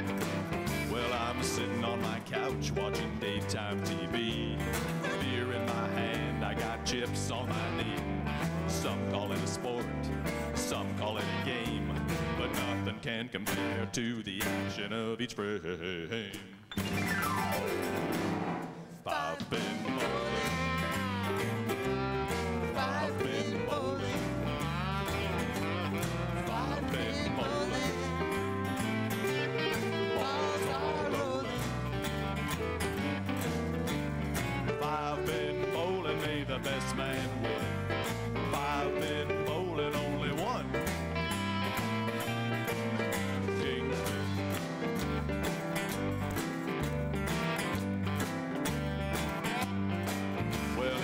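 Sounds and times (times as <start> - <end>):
guitars playing: 0.0 - 13.8, 16.7 - 51.0
walking bass line: 19.5 - 51.0.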